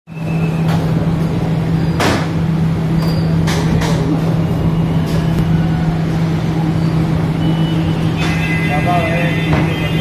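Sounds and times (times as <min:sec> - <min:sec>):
machinery humming: 0:00.1 - 0:10.0.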